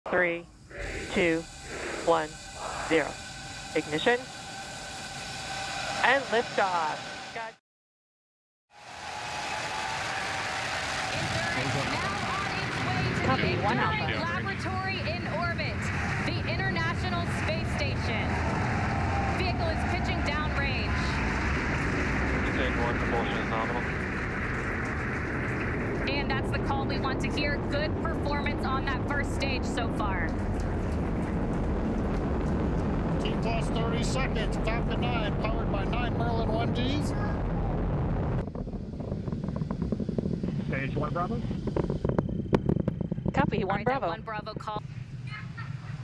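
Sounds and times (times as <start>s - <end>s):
rocket engines roaring: 0.1s - 7.6s, 8.8s - 46.0s.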